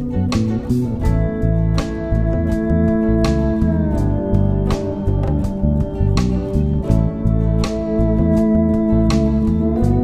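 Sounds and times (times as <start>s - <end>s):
guitar-led background music: 0.0s - 10.0s.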